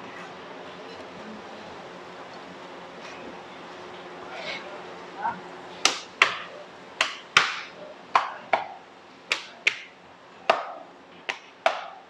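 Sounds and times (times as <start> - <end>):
dough slapping on steel worktop: 5.8 - 9.9, 10.5 - 12.0.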